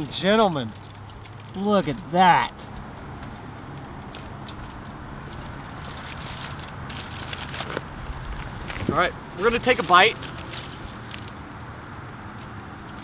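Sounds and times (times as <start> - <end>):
aluminium foil crinkling: 0.0 - 3.4, 4.1 - 13.0.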